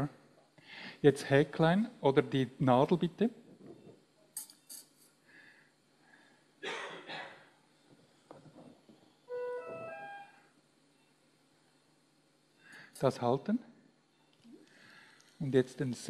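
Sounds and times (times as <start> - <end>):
rising three-note chime: 9.3 - 10.4.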